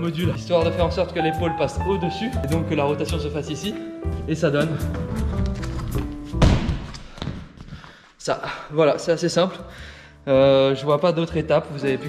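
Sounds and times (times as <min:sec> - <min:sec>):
body thudding onto crash mat: 0:06.4 - 0:07.0.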